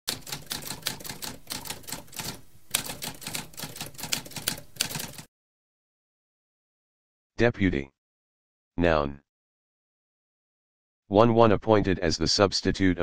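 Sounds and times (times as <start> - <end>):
typewriter keys striking: 0.1 - 5.3.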